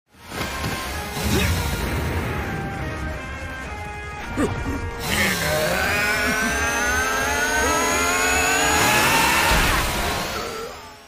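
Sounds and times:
chainsaw engine revving: 0:05.0 - 0:11.0.

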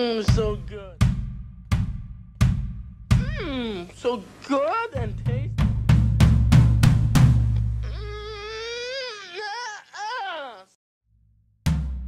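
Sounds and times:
high wavering vocal cry: 0:03.2 - 0:03.9, 0:07.8 - 0:10.8.

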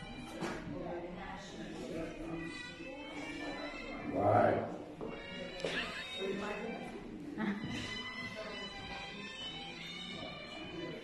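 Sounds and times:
tango music: 0:00.0 - 0:11.0
people talking: 0:05.2 - 0:10.9.

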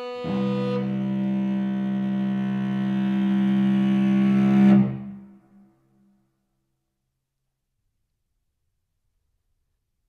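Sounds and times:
string quartet sustained chord: 0:00.0 - 0:05.3.

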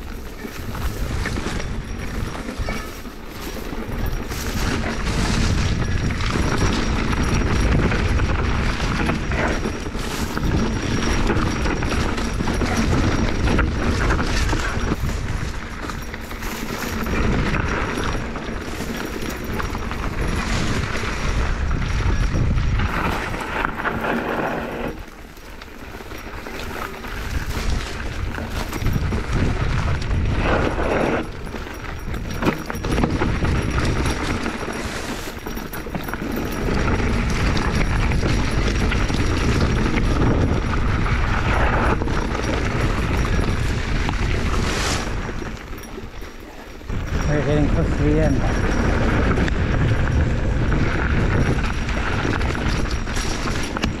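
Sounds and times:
bike rattling and knocking: 0:00.0 - 0:54.0
wind on microphone: 0:00.0 - 0:54.0
brush rustling and scraping: 0:02.3 - 0:05.6, 0:34.4 - 0:35.5, 0:44.4 - 0:48.4.

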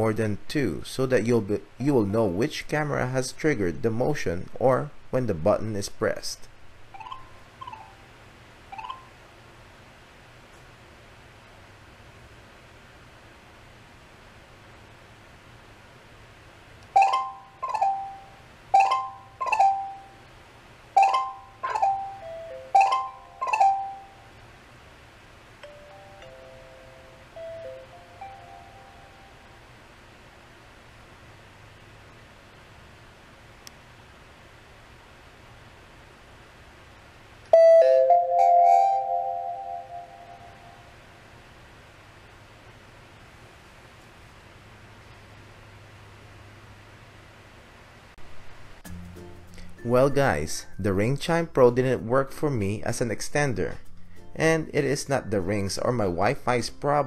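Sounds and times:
xylophone alert chime: 0:08.8 - 0:09.1, 0:17.0 - 0:20.1, 0:21.0 - 0:24.2, 0:37.6 - 0:40.7
chime tone ringing: 0:17.0 - 0:20.2, 0:21.0 - 0:24.2, 0:25.6 - 0:29.5, 0:37.6 - 0:40.8.

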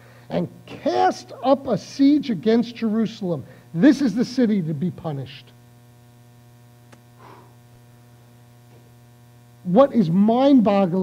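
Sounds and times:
electrical mains hum: 0:00.0 - 0:11.0
small click: 0:06.9 - 0:07.1.

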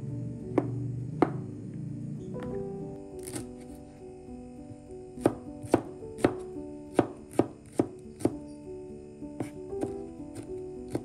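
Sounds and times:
soft background music: 0:00.0 - 0:11.0
knife chopping on plastic board: 0:03.2 - 0:03.7, 0:05.2 - 0:08.4, 0:09.4 - 0:11.0.

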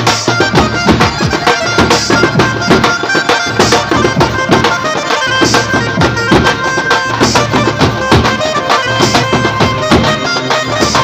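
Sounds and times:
drums beating fast rhythm: 0:00.0 - 0:11.0
sustained melody line: 0:00.0 - 0:11.0.

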